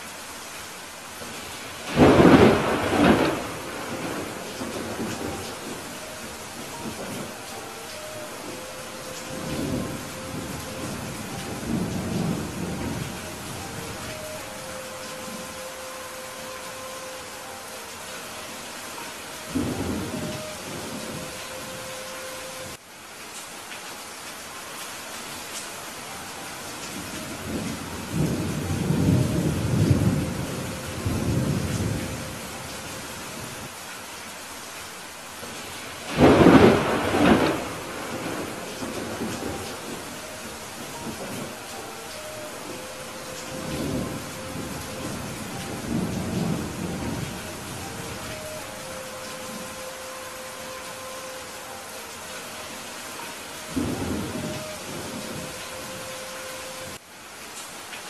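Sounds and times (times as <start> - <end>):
heavy rain: 0.0 - 58.0
distant thunder rumbling: 1.2 - 22.2, 35.5 - 52.2.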